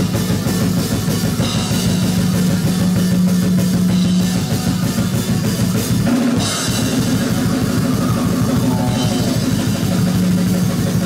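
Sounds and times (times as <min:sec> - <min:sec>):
heavy metal band playing live: 0:00.0 - 0:11.0
rapid drumming: 0:00.0 - 0:11.0.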